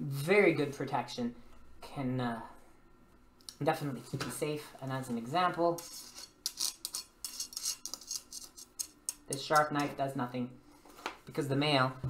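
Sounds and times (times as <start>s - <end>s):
knife scraping on chainmail: 5.7s - 9.7s.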